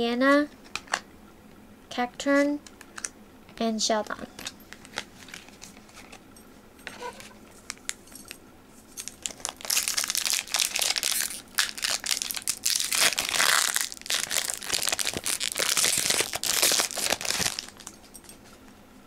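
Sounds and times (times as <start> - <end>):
foil wrapper crinkling and tearing: 7.1 - 8.0, 9.0 - 18.0.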